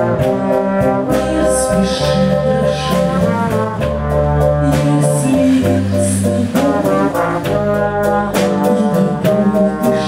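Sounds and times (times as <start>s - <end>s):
brass section playing jazz: 0.0s - 10.0s.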